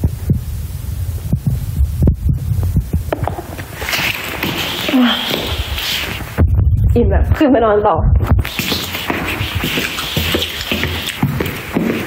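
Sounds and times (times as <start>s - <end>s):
steady low hum: 0.0s - 12.0s
snack chewing crunches: 8.4s - 12.0s.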